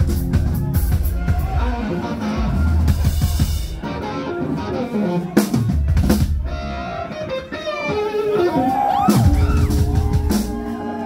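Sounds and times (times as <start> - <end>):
drum kit playing: 0.0 - 6.8, 7.4 - 11.0
distorted electric guitar: 0.0 - 11.0.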